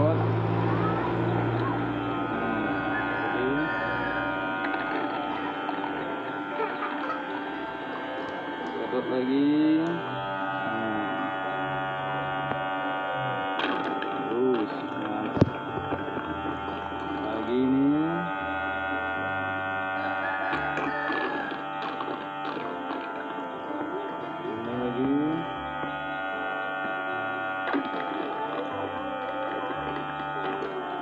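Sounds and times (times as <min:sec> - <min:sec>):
melodic music with sliding notes: 0:00.0 - 0:31.0
suction pump electric hum: 0:00.0 - 0:31.0.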